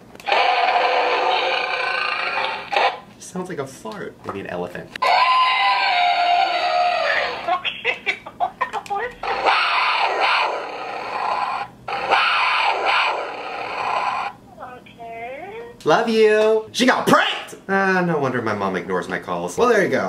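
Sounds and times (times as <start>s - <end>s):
garbled voice changer buzz: 9.2s - 14.4s.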